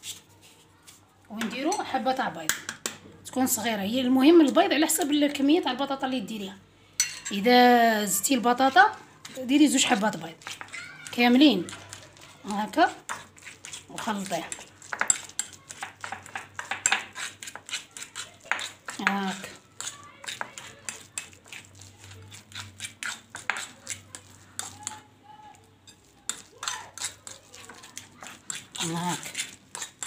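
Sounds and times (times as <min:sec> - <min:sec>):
metal spoon scraping a bowl: 0:08.2 - 0:25.1, 0:25.8 - 0:30.0.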